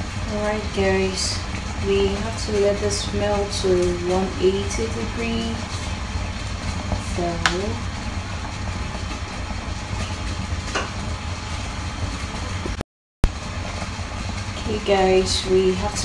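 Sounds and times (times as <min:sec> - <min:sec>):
pot heating low rumble: 0:00.0 - 0:16.0.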